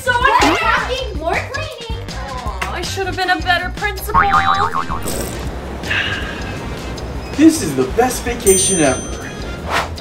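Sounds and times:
comic wobbling boing: 0:04.1 - 0:05.3.

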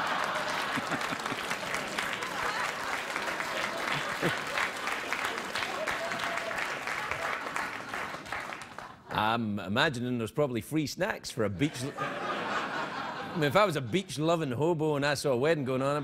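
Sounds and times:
audience applauding: 0:00.0 - 0:09.1
audience laughing: 0:00.0 - 0:09.2, 0:11.6 - 0:14.6.

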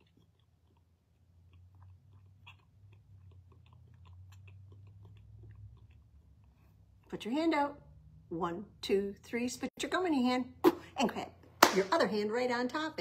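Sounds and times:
mouth clicks and lip smacks: 0:00.0 - 0:06.7
low steady hum: 0:00.0 - 0:13.0.

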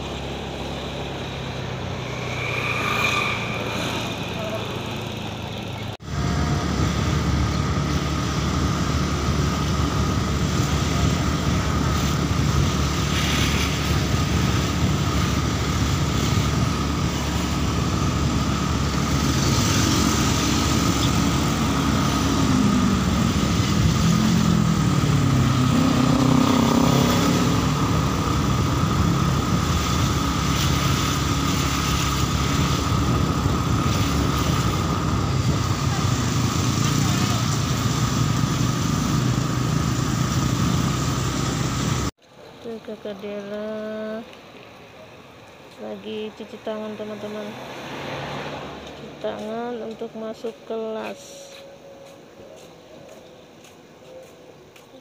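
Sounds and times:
small motorcycle engine: 0:00.0 - 0:42.1
wind and road noise: 0:00.0 - 0:55.0.

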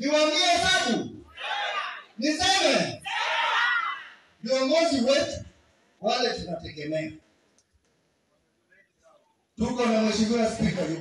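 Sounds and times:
man speaking into a microphone: 0:00.0 - 0:01.3, 0:02.1 - 0:03.0, 0:04.4 - 0:07.2, 0:08.8 - 0:11.0
faint clicks: 0:07.5 - 0:08.0.

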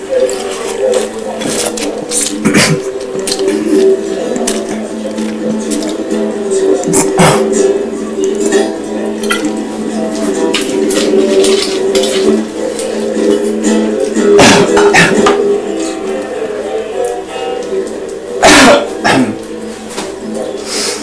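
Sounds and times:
plucked guitar music: 0:00.0 - 0:20.7.

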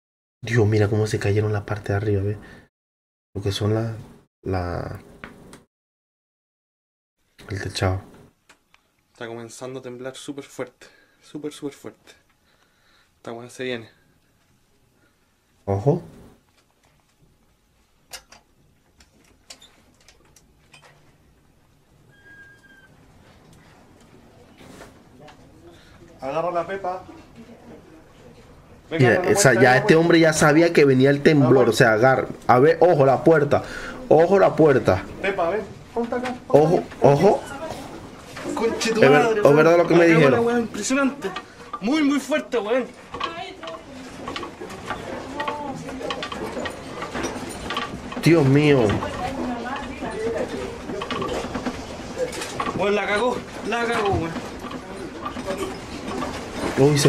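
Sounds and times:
light clicks and rattles: 0:18.1 - 0:21.2
kitchen utensils rattling: 0:36.8 - 0:57.0
faint broken voices: 0:43.1 - 0:57.0.

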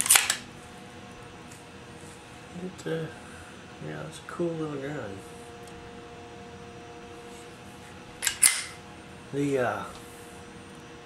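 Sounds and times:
pistol action metallic clicks: 0:00.0 - 0:00.4, 0:08.2 - 0:08.8.

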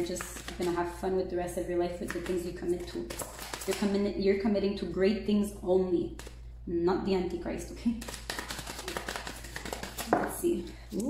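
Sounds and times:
cards clicking and tapping: 0:00.0 - 0:00.9, 0:01.9 - 0:03.9, 0:08.0 - 0:11.0.

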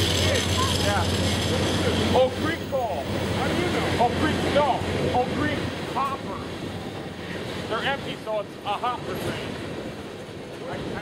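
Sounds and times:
freight train cars rolling past: 0:00.0 - 0:11.0.

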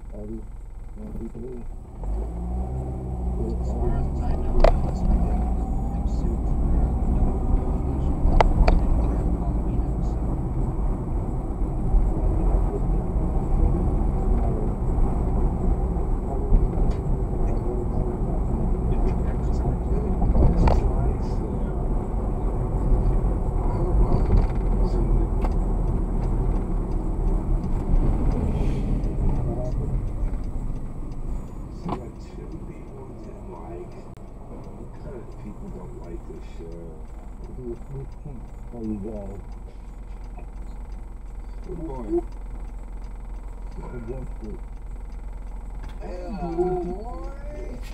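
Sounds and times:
car road and engine rumble: 0:00.0 - 0:47.9.

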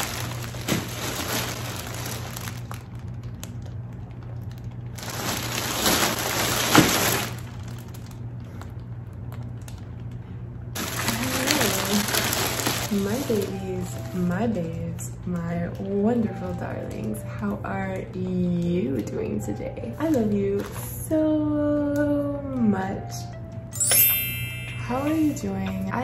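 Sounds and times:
plastic bag crinkling: 0:00.0 - 0:21.2.

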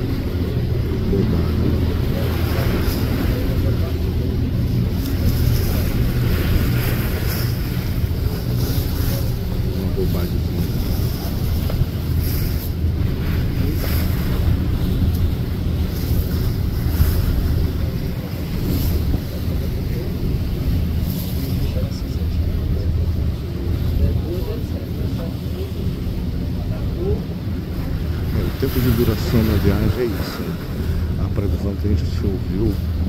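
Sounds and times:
ferry engines droning: 0:00.0 - 0:33.0
wind buffeting microphone: 0:00.0 - 0:33.0.

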